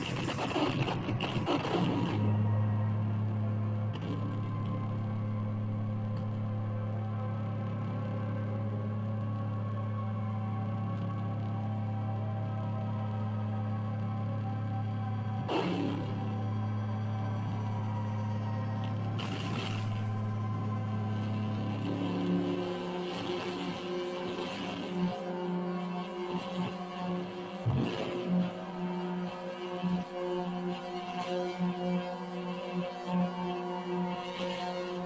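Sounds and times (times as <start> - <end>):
electronic drone: 0.0 - 35.0.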